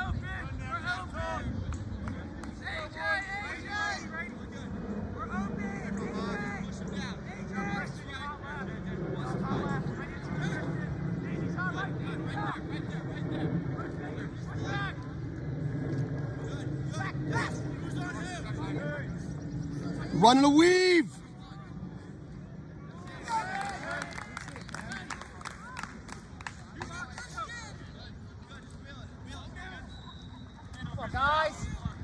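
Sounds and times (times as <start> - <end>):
low background rumble: 0.0 - 29.8
shouts and chatter: 22.9 - 28.0.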